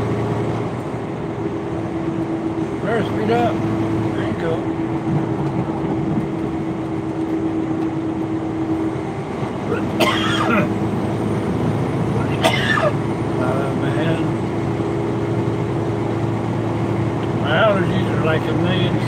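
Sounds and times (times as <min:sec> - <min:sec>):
road noise: 0:00.0 - 0:19.0
truck engine drone: 0:00.0 - 0:19.0.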